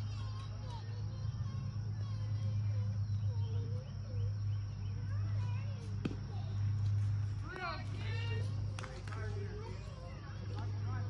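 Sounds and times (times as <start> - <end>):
distant voices calling out: 0.0 - 11.0
steady low hum: 0.0 - 11.0.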